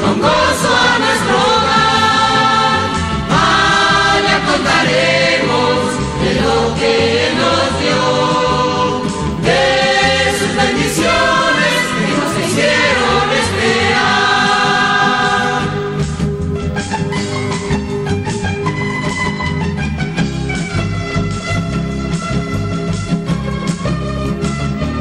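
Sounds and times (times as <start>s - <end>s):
choir singing in chorus: 0.0s - 16.2s
instrumental accompaniment: 0.0s - 25.0s.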